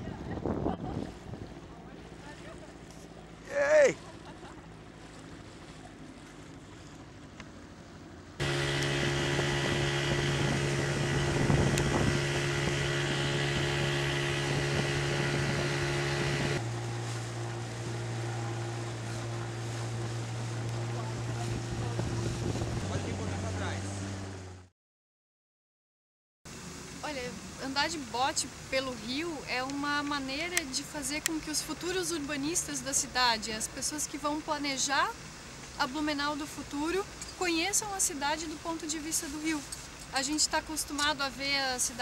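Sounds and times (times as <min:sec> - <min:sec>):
outboard motor running: 0:00.0 - 0:24.7
water noise: 0:00.0 - 0:24.7, 0:26.5 - 0:42.0
wind: 0:00.0 - 0:24.7, 0:26.5 - 0:42.0.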